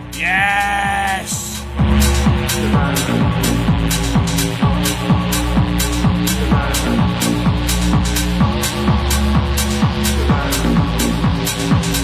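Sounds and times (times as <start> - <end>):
techno beat: 0.0 - 12.0.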